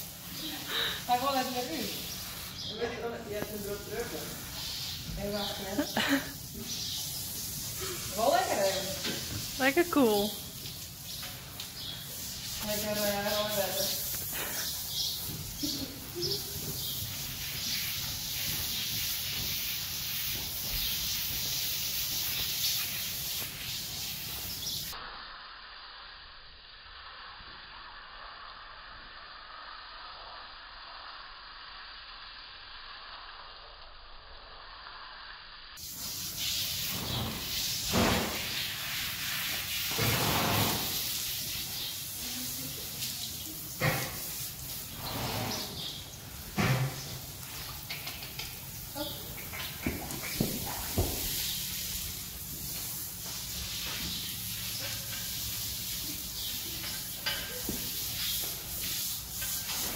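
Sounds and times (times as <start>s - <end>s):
hose spraying water: 0.0s - 59.9s.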